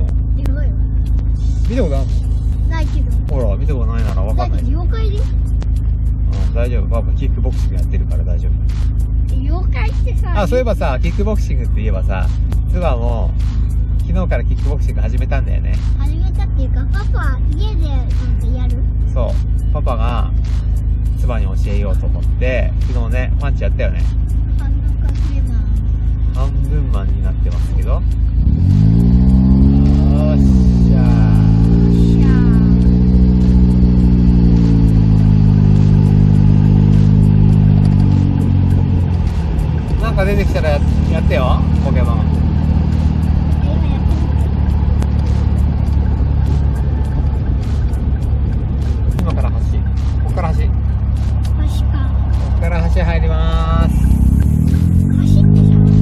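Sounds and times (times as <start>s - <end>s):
car engine revving while driving: 0.0s - 56.0s
people talking: 2.7s - 5.3s, 14.1s - 20.3s, 21.2s - 25.8s, 30.0s - 32.8s, 40.0s - 42.3s, 43.5s - 44.4s, 49.2s - 50.8s, 51.4s - 54.0s, 55.1s - 55.8s.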